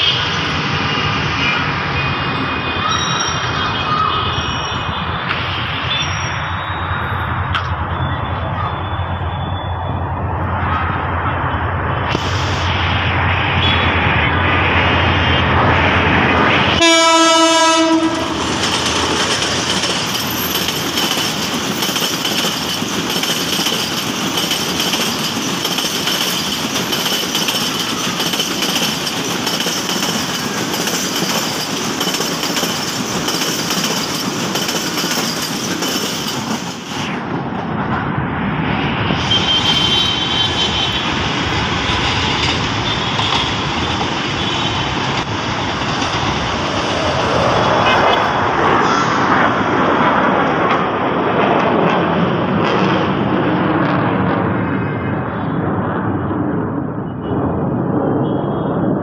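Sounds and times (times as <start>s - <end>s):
diesel locomotive rumbling: 0.0s - 54.7s
train wheels on rails: 0.0s - 54.8s
train horn: 16.7s - 18.5s, 39.2s - 41.2s.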